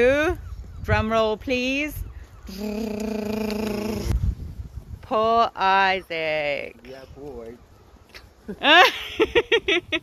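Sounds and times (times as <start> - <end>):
woman's rolled-r tongue trill: 2.5 - 4.2.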